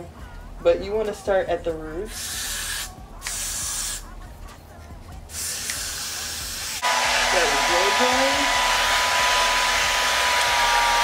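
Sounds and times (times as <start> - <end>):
aerosol hairspray hissing: 2.1 - 4.1, 5.3 - 8.9
hair dryer running: 5.6 - 11.0.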